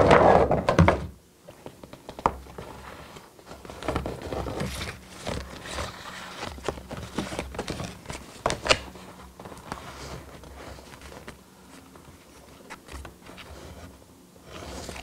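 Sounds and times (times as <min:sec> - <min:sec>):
cardboard rustling and scraping: 0:00.0 - 0:15.0.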